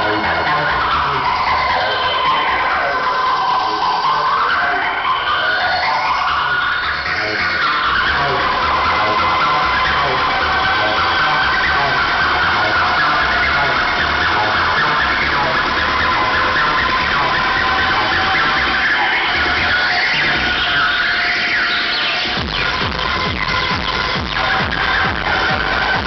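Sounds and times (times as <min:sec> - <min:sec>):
acid techno music: 0:00.0 - 0:26.0
high synth tones: 0:00.0 - 0:26.0
kick drum: 0:22.4 - 0:26.0.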